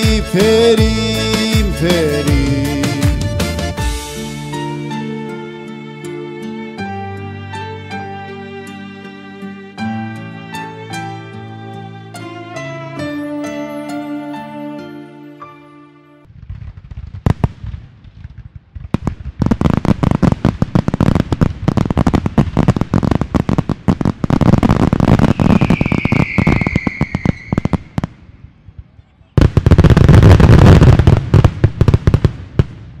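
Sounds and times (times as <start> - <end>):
fireworks bangs and crackles: 16.3 - 33.0
firework falling whistle: 25.0 - 28.1.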